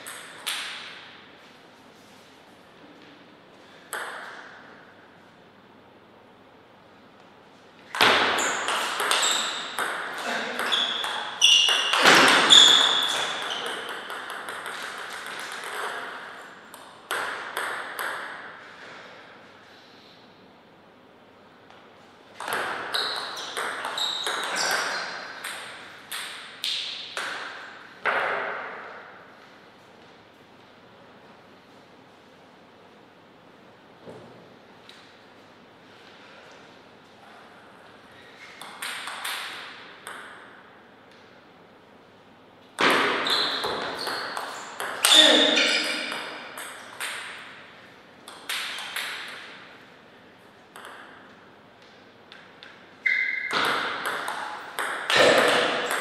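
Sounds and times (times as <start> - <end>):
table tennis ball hits: 0.0 - 1.1, 3.9 - 4.6, 7.9 - 18.6, 22.4 - 29.1, 38.6 - 40.6, 42.8 - 47.6, 48.2 - 49.7, 50.7 - 51.4, 52.3 - 56.0.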